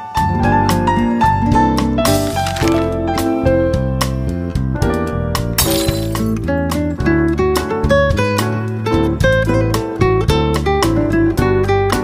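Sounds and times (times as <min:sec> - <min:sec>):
melodic music with bass line: 0:00.1 - 0:12.0
glass shattering: 0:05.6 - 0:06.4.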